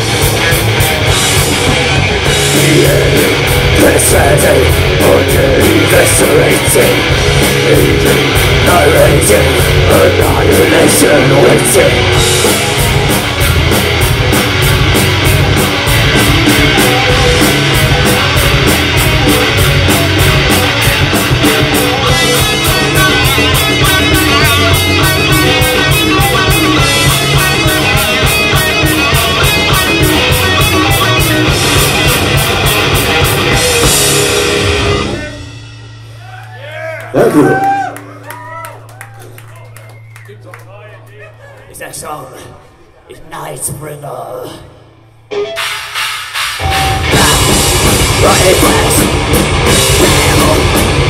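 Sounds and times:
metal band playing live: 0:00.0 - 0:38.4, 0:43.2 - 0:51.0.

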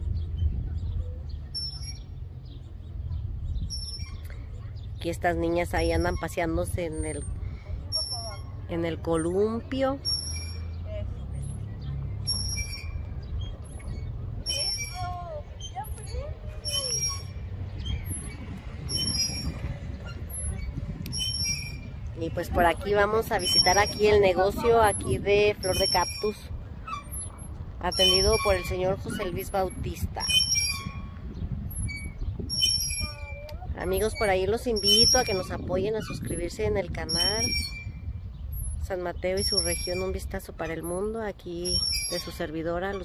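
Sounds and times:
steady low rumble: 0:00.0 - 0:41.7
metal swing squeaking: 0:00.0 - 0:43.0.

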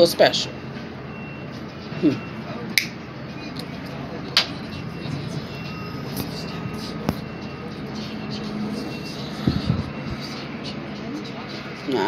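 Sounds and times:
heavy engine rumble: 0:00.0 - 0:12.0.

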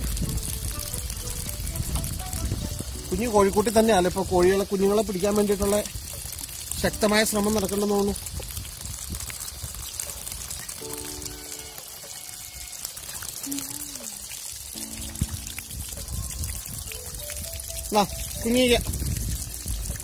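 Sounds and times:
running water splashing: 0:00.0 - 0:20.0.

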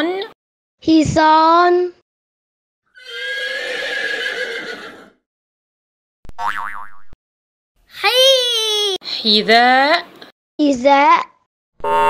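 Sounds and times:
horse whinny: 0:02.9 - 0:05.2.

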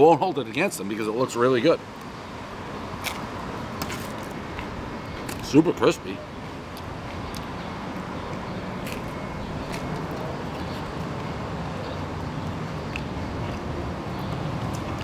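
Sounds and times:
street traffic rumble: 0:00.0 - 0:15.0.

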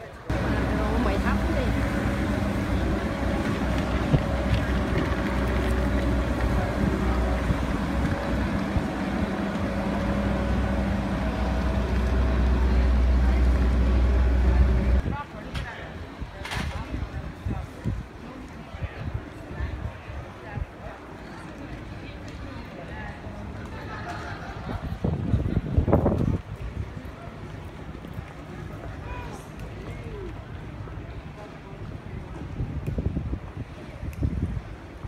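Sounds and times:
engine humming: 0:00.3 - 0:15.1.

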